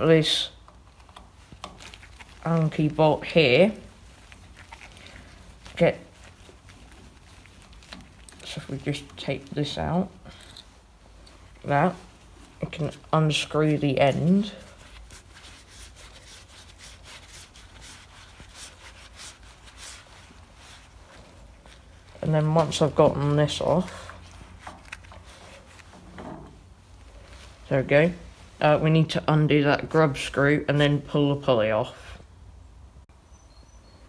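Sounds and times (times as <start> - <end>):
low steady hum: 0.0 - 34.0
gloved hand rubbing on steel: 0.1 - 28.8.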